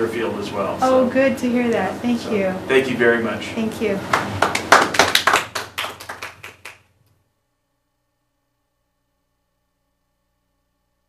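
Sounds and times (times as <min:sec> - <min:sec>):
people clapping: 0:04.1 - 0:06.9.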